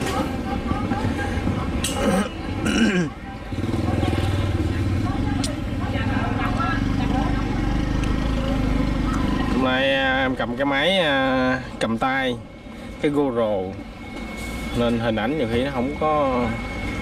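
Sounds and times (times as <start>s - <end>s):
people's voices: 0.0s - 13.9s
motorcycle engine running: 3.4s - 10.3s.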